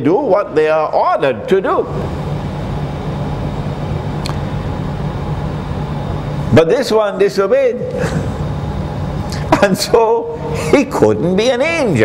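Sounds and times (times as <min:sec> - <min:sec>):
low rumble with hum: 0:00.0 - 0:12.0.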